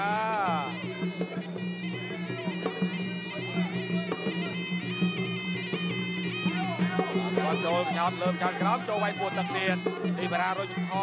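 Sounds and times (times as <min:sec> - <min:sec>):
shrill reed pipe melody: 0:00.0 - 0:11.0.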